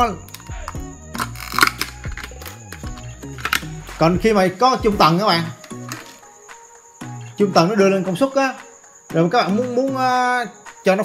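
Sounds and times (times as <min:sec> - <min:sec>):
background music: 0:00.0 - 0:11.0
plastic case clicking and crackling: 0:00.3 - 0:03.7, 0:05.6 - 0:06.2.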